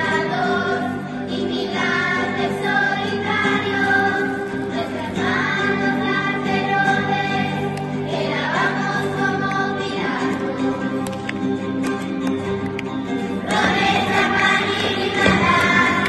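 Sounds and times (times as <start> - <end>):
children's choir singing: 0.0 - 11.6, 13.1 - 16.0
acoustic guitars: 0.0 - 16.0.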